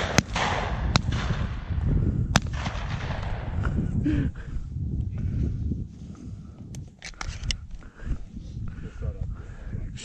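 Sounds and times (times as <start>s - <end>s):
wind: 0.0s - 10.0s
microphone handling rumble: 0.6s - 10.0s
sharp clicks: 6.7s - 7.8s.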